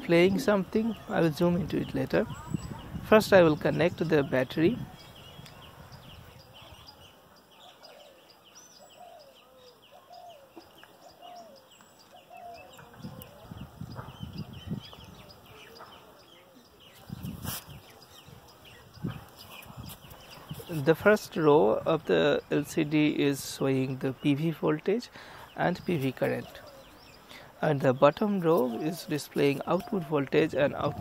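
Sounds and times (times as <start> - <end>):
faint distant voices: 0.0 - 31.0
small birds chirping: 0.0 - 31.0.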